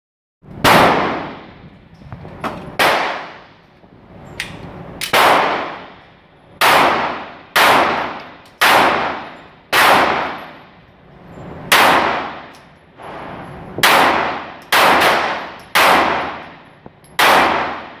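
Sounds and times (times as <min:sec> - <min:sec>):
pistol shots echoing: 0:00.6 - 0:01.6, 0:02.8 - 0:03.5, 0:05.0 - 0:06.0, 0:06.6 - 0:10.6, 0:11.7 - 0:12.6, 0:13.8 - 0:16.6, 0:17.2 - 0:18.0.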